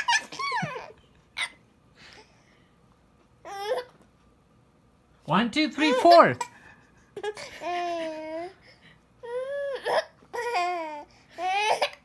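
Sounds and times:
baby laughing: 0.0s - 1.6s, 7.2s - 8.5s, 9.7s - 12.0s.

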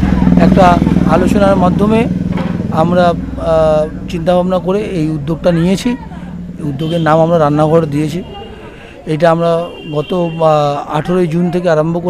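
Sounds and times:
low engine-like hum: 0.0s - 9.1s
man speaking: 0.3s - 2.1s, 2.8s - 12.0s.

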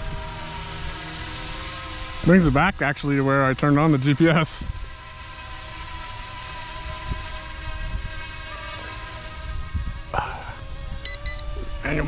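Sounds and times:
wind rumbling on microphone: 0.0s - 5.0s, 5.9s - 12.0s
rc helicopter motor whine: 0.0s - 12.0s
short electronic beeps: 11.0s - 11.4s.

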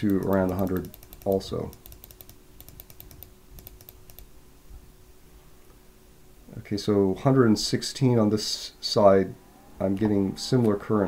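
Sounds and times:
computer keyboard key clicks: 0.0s - 4.3s.

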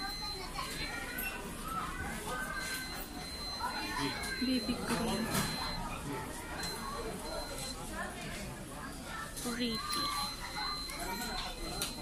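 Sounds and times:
chatter of shoppers: 0.0s - 12.0s.

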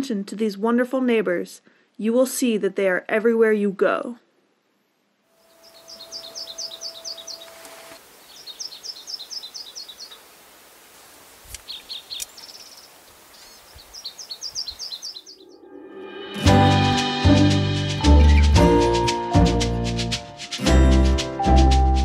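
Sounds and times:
light background hiss: 0.0s - 15.3s
small songbird singing: 5.4s - 10.3s, 11.5s - 15.7s, 18.0s - 19.0s.

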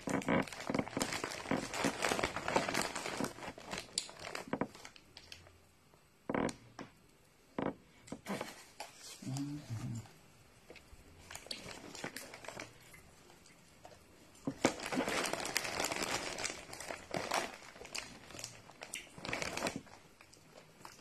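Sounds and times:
plastic bag crinkling: 0.0s - 5.5s, 11.2s - 13.0s, 13.8s - 21.0s.

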